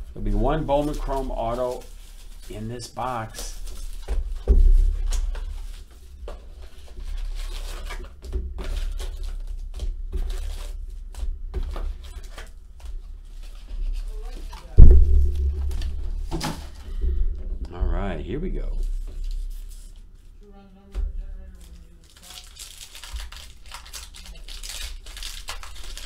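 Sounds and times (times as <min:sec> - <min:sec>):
foil packs crinkling: 0:00.0 - 0:14.8, 0:18.7 - 0:20.1, 0:21.3 - 0:26.0
hands handling cardboard box: 0:00.8 - 0:16.8.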